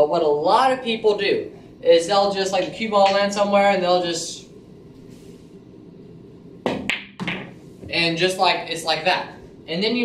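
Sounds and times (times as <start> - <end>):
pool balls clacking: 6.7 - 7.6.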